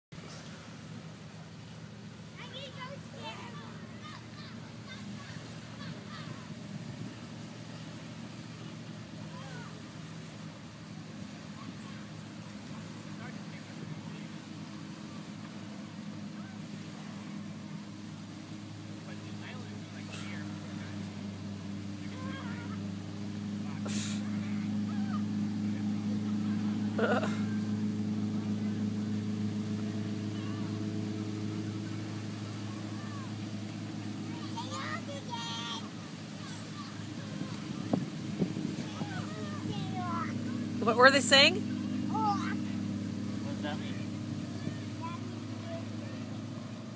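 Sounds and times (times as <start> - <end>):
low engine hum: 0.1 - 46.9
motor running steadily: 0.2 - 46.9.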